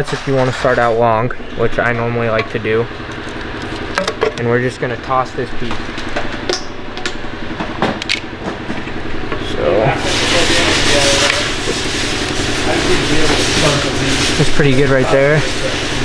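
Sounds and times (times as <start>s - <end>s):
mechanical hum: 0.0s - 16.0s.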